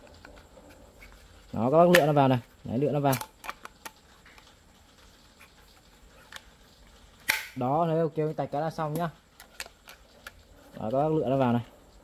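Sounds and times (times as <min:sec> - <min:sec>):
sharp plastic clicks: 0:07.2 - 0:07.6.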